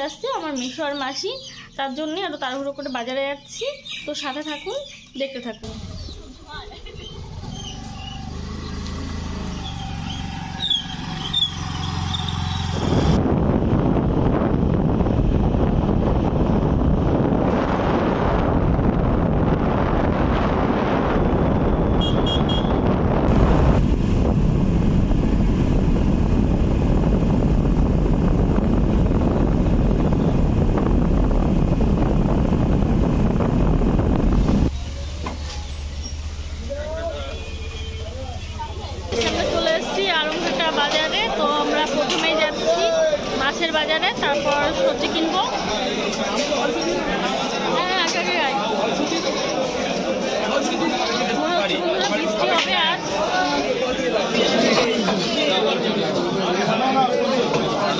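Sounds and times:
motor scooter engine hum: 0:05.6 - 0:20.1, 0:21.0 - 0:45.9
wind rushing over microphone: 0:11.3 - 0:34.8.

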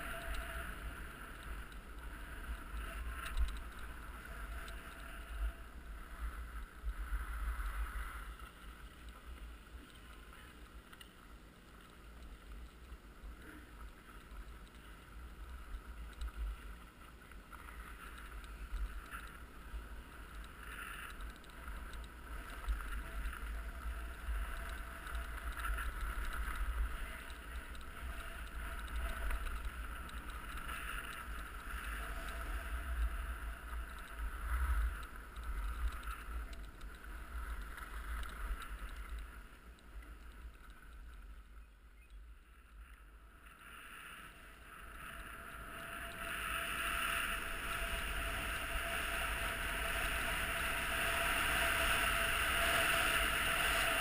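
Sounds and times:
wind rumble on microphone: 0:15.1 - 0:41.6, 0:42.3 - 0:54.0
skis scraping on snow: 0:21.6 - 0:36.4, 0:43.6 - 0:54.0.

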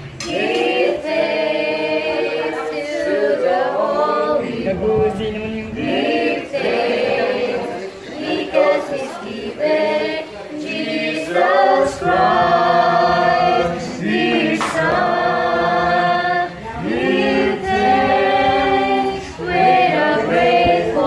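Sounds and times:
group of people singing: 0:00.0 - 0:21.0.

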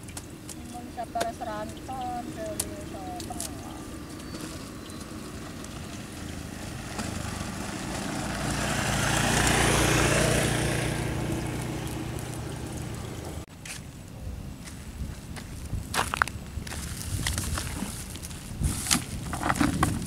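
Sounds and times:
small engine passing by: 0:03.5 - 0:13.5.

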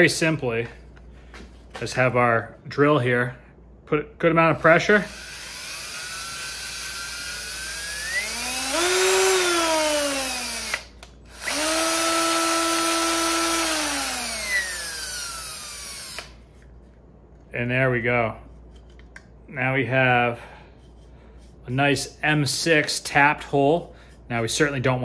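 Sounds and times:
cordless drill motor: 0:05.1 - 0:16.4.

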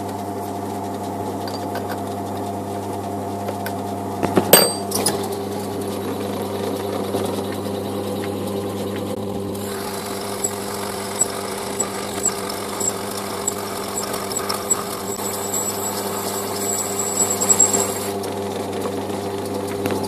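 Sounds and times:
metal lathe humming: 0:04.6 - 0:18.2
lathe tool cutting metal tube: 0:09.5 - 0:18.2.

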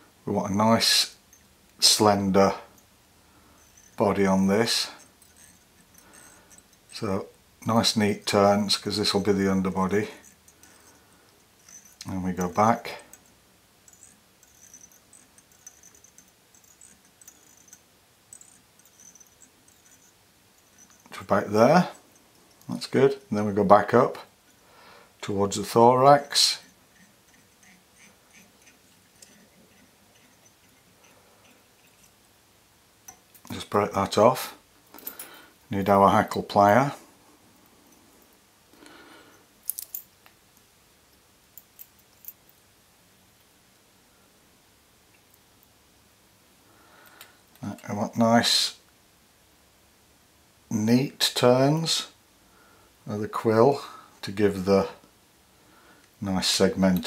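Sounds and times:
thread scratching on hook: 0:03.6 - 0:07.0, 0:08.6 - 0:22.8, 0:26.1 - 0:32.2
small metal clicks: 0:04.9 - 0:07.0, 0:10.2 - 0:21.2, 0:26.2 - 0:32.2, 0:39.6 - 0:42.6.

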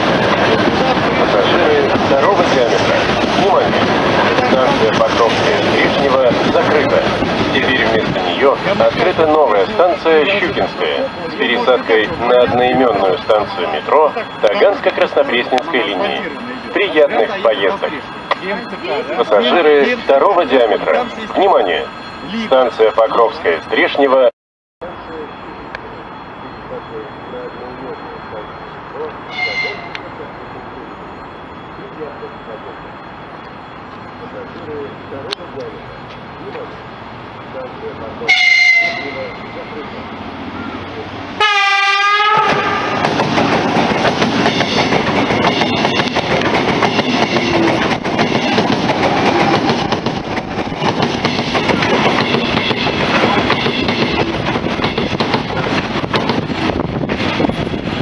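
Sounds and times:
train passing: 0:00.0 - 0:58.0
train horn: 0:29.3 - 0:30.0, 0:38.3 - 0:39.4, 0:41.4 - 0:43.0.

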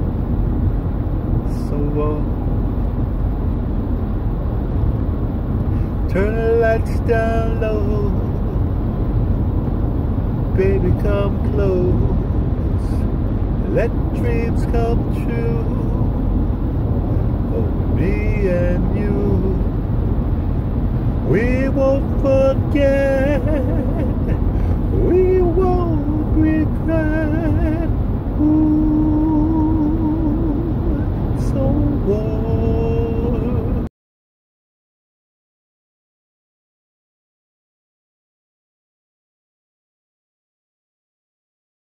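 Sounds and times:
car cabin rumble: 0:00.0 - 0:33.9
man singing wordless melody: 0:01.4 - 0:02.4, 0:05.8 - 0:08.6, 0:10.5 - 0:16.3, 0:17.4 - 0:19.9, 0:21.1 - 0:33.9.

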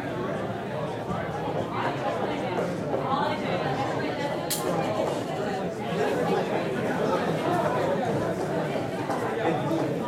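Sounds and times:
babble of many voices: 0:00.0 - 0:10.0.

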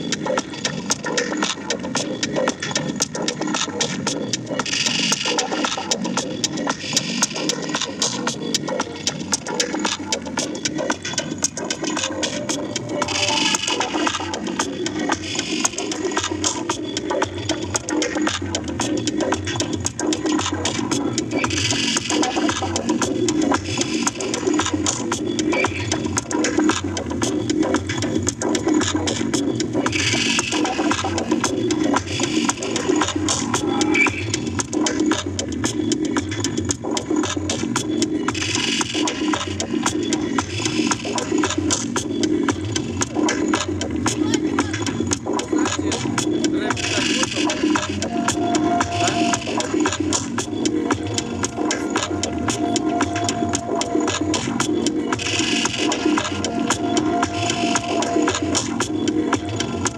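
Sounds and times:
crackling electronic music: 0:00.0 - 0:59.9.

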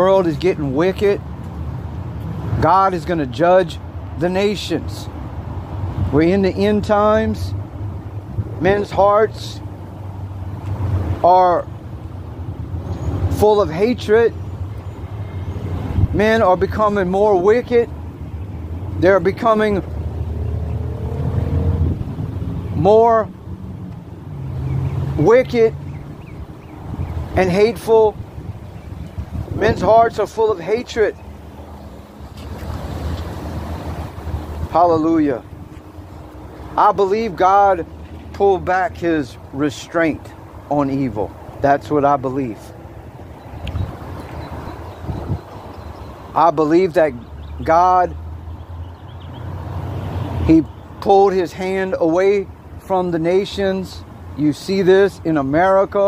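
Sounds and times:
car engine rumble: 0:05.1 - 0:51.8
vehicle engine accelerating: 0:19.8 - 0:27.3.

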